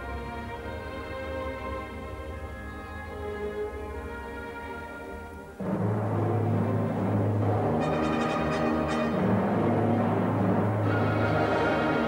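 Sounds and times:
symphony orchestra playing: 0:00.0 - 0:12.0
brass: 0:04.3 - 0:12.0
timpani: 0:05.5 - 0:12.0.

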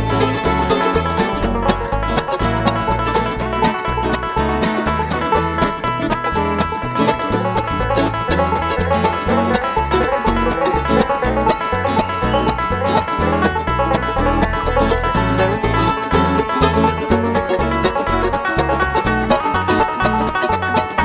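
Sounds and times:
acoustic guitar: 0:00.0 - 0:21.0
banjo picking: 0:00.0 - 0:21.0
bass line: 0:00.0 - 0:21.0.

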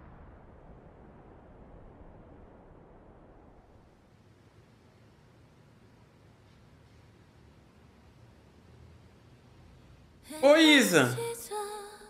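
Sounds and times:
faint microphone hiss: 0:04.0 - 0:12.0.

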